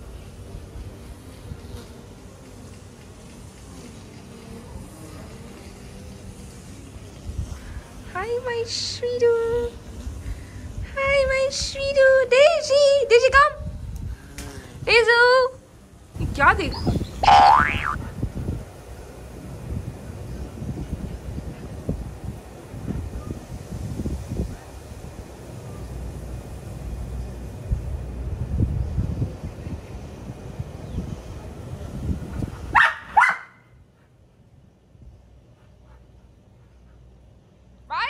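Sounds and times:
dog barking: 0:32.7 - 0:33.6.

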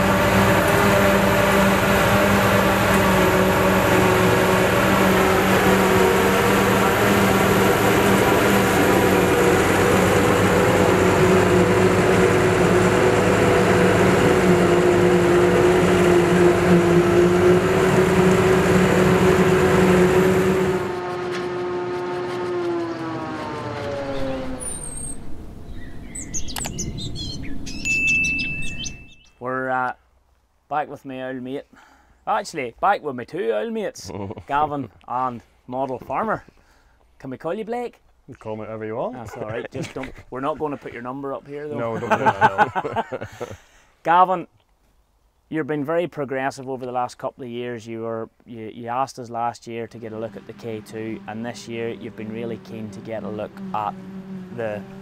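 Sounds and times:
harvester and tractor droning: 0:00.0 - 0:29.2, 0:39.2 - 0:43.9, 0:49.6 - 0:55.0
birds chirping: 0:22.4 - 0:29.4.

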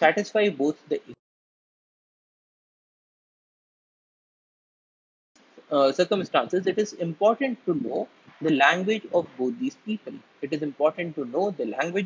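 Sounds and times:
person speaking: 0:00.0 - 0:01.2, 0:05.6 - 0:12.0.

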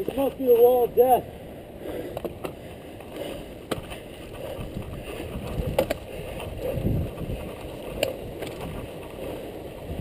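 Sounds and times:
bike clicks: 0:02.0 - 0:10.0
wind on microphone: 0:03.8 - 0:10.0.

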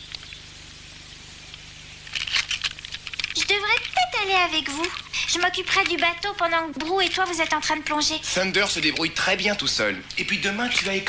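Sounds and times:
person speaking: 0:03.3 - 0:11.0.

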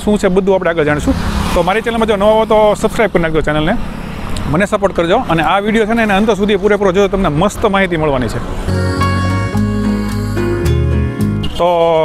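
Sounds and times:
man talking: 0:00.0 - 0:03.8, 0:04.4 - 0:08.5, 0:11.4 - 0:12.0.

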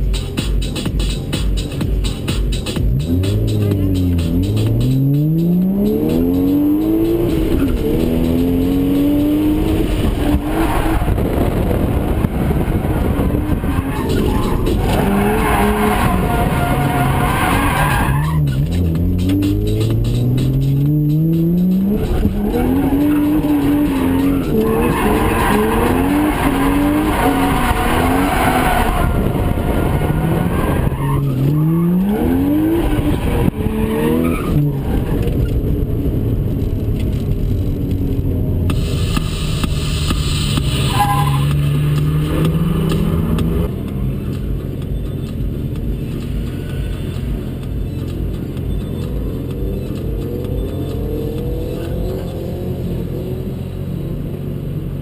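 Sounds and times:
car engine revving hard: 0:02.8 - 0:36.9, 0:38.0 - 0:43.9
tyres squealing and skidding: 0:05.3 - 0:35.7, 0:40.5 - 0:54.0.

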